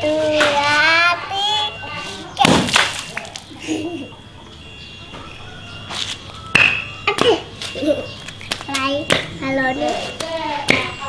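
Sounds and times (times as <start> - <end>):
water balloon bursting: 2.4 - 3.4
water splashing on concrete: 2.4 - 3.5.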